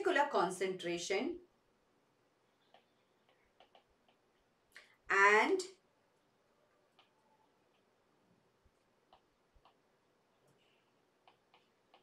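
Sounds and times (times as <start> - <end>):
stylus tapping on tablet screen: 2.6 - 4.5, 8.8 - 12.0.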